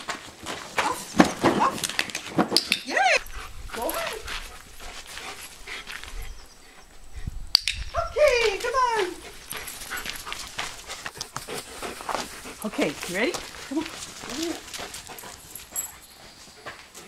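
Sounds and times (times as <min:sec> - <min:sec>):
footsteps scuffing on driveway: 0:00.0 - 0:01.8, 0:03.6 - 0:06.3, 0:08.5 - 0:17.0.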